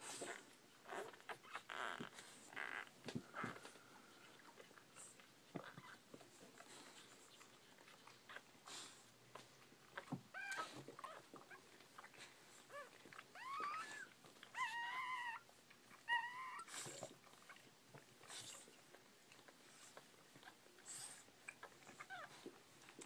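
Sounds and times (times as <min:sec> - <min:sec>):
puppies snuffling: 0:00.0 - 0:23.0
puppies squeaking and whining: 0:00.0 - 0:23.0.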